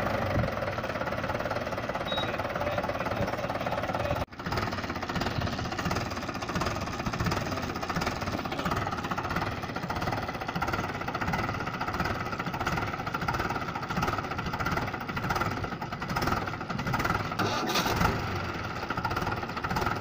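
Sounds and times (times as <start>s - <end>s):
tractor diesel engine running: 0.0s - 20.0s.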